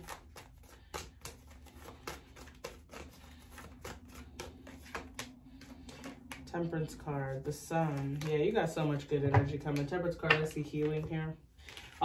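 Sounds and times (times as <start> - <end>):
cards being shuffled: 0.0 - 9.0, 9.6 - 12.0.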